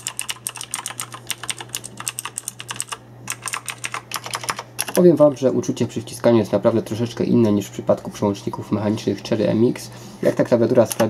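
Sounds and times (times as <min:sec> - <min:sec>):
mechanical keyboard typing: 0:00.0 - 0:05.0.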